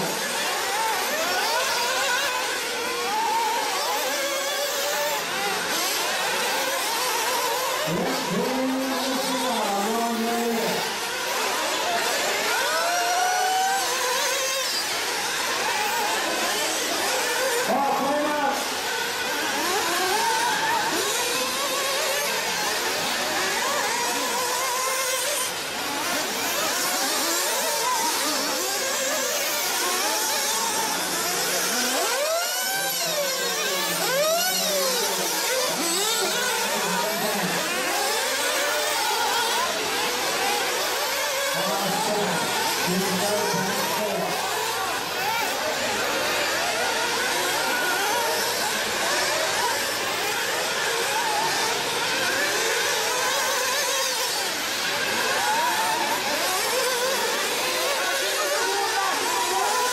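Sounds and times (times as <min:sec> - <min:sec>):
rc car engines whining: 0:00.0 - 0:59.9.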